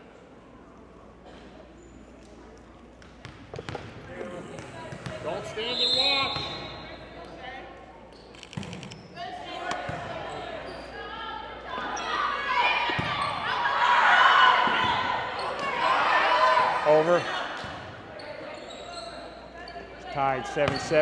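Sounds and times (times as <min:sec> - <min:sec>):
players calling out and shouting: 0:03.6 - 0:08.3, 0:09.0 - 0:21.0.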